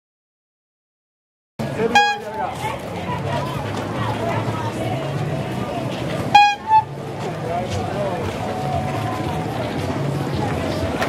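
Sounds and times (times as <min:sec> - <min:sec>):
street market chatter: 0:01.6 - 0:11.0
vehicle horn toots: 0:01.9 - 0:02.4, 0:06.3 - 0:06.9.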